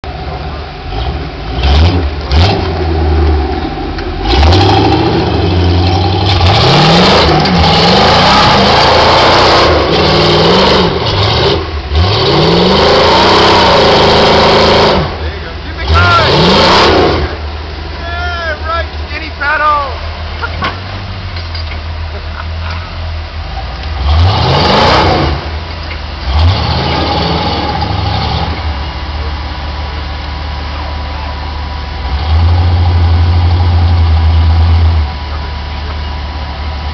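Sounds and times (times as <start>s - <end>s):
buggy engine revving hard: 0.1s - 18.2s, 23.4s - 25.6s, 26.2s - 28.8s, 32.0s - 35.8s.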